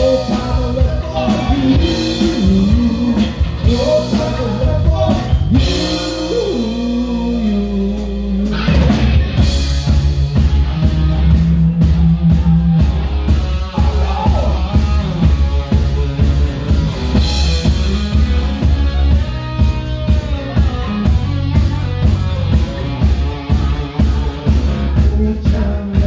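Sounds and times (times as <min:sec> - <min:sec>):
bass guitar: 0:00.0 - 0:26.0
drum kit pounding: 0:00.0 - 0:26.0
electric guitar: 0:00.0 - 0:26.0.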